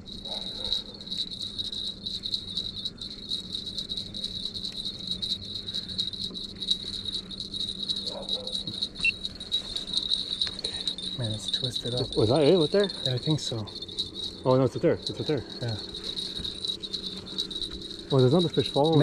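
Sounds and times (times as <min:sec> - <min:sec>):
fishing reel whirring and ticking: 0:00.0 - 0:19.0
outboard motor hum: 0:02.8 - 0:19.0.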